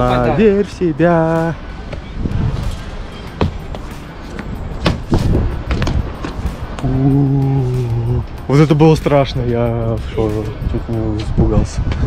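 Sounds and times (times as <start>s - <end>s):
wind rumbling on microphone: 1.5s - 8.5s, 9.2s - 12.0s.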